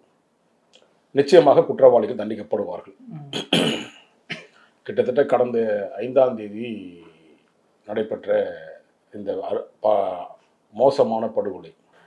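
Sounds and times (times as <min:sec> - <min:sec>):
man clearing his throat: 0:03.1 - 0:04.6
man coughing: 0:03.2 - 0:04.6.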